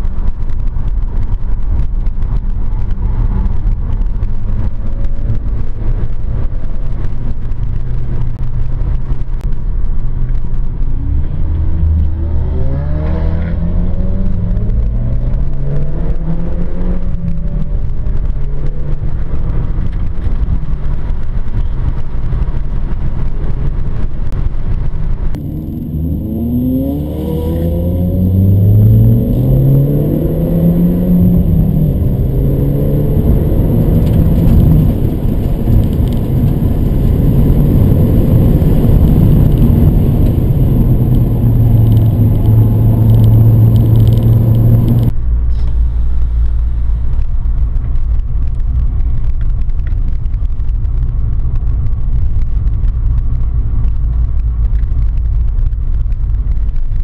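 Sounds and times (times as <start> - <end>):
car engine accelerating: 0.0 - 56.6
engine and road noise rumble: 0.0 - 57.0.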